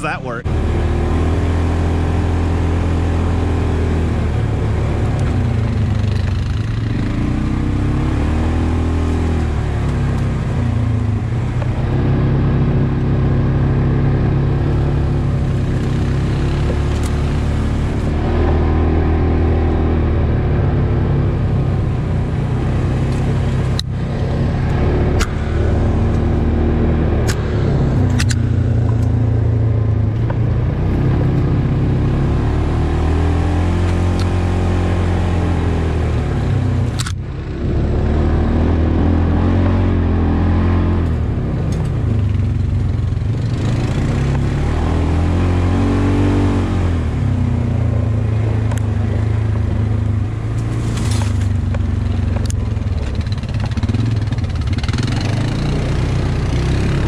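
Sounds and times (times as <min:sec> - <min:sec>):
utility vehicle engine running: 0:00.0 - 0:57.0.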